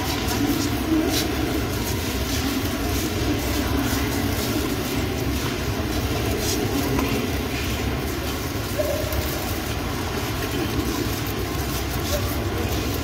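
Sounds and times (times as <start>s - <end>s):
low rumbling room noise: 0.0s - 13.0s.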